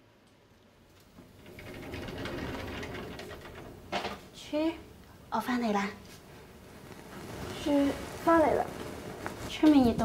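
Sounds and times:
rapid mechanical rattling: 1.3s - 4.2s.

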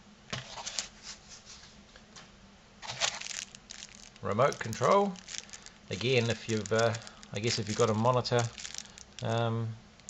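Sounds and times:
plastic bag crinkling: 2.8s - 10.0s.

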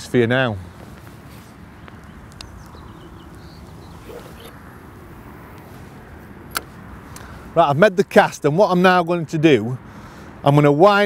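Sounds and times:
outdoor background rush: 0.0s - 11.0s
faint ticks: 1.8s - 3.5s
sharp click: 6.5s - 7.3s.

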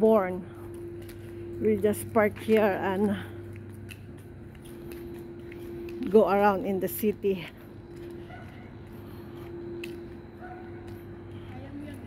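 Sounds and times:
steady low hum: 0.0s - 12.0s
person's voice: 1.6s - 3.3s.

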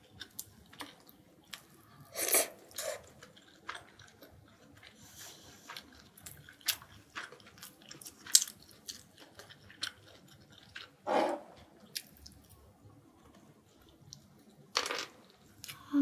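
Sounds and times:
chewing with wet clicks: 0.0s - 2.1s, 2.7s - 5.0s, 5.6s - 11.0s, 11.8s - 14.6s.

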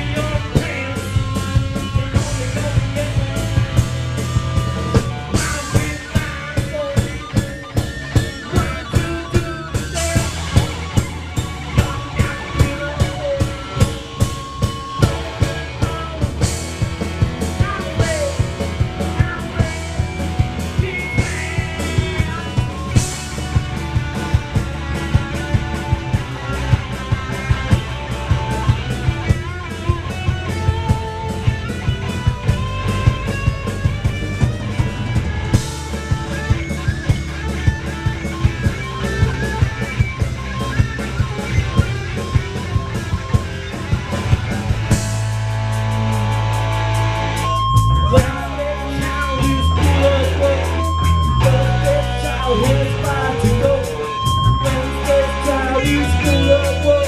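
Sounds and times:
bass guitar: 0.0s - 57.0s
electric guitar: 0.0s - 57.0s
steady drum beat: 0.0s - 57.0s.

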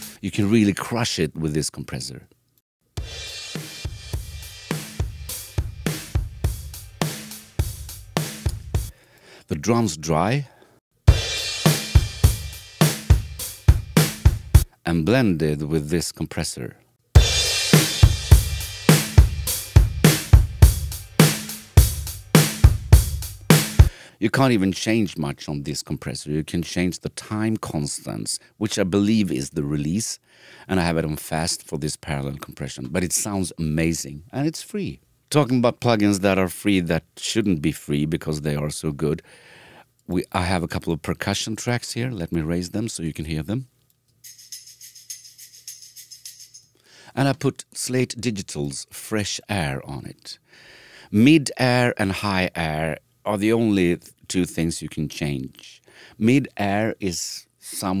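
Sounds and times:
shaker percussion strokes: 0.0s - 0.2s, 17.2s - 23.9s, 44.2s - 46.8s
cymbal crash: 3.0s - 7.5s, 11.1s - 14.6s, 17.2s - 22.8s
kick and snare drum beat: 3.0s - 8.9s, 11.1s - 14.7s, 17.2s - 23.9s.

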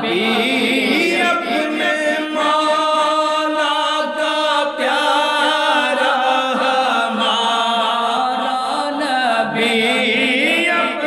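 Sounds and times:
men singing devotional song: 0.0s - 11.0s.

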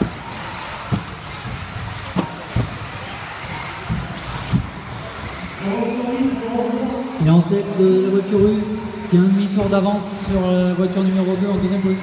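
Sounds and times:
rc cars whirring: 0.0s - 12.0s.

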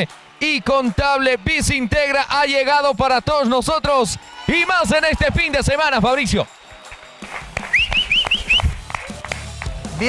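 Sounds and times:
rising whistle-like chirps: 6.5s - 8.8s.

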